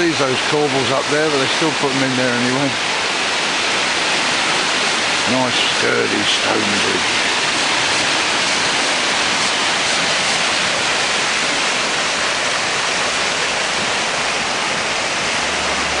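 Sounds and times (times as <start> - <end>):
fast water rushing: 0.0 - 16.0.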